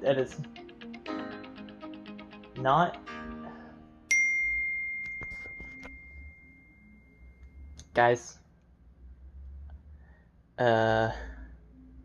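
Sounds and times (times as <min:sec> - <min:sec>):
bright bell ding: 0:04.1 - 0:07.7.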